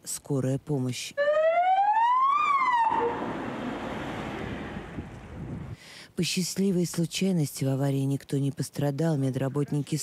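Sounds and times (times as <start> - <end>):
ambulance siren wailing: 1.2 - 4.9
street traffic noise: 2.6 - 5.8.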